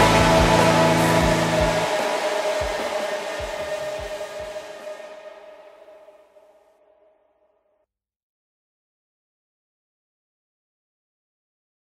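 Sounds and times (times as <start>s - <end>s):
low bass: 0.0s - 4.7s
distorted electronic music: 0.0s - 6.2s.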